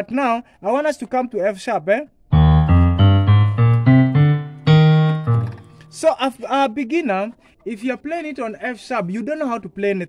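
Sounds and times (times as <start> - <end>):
keyboard piano notes rising scale: 2.3 - 6.0.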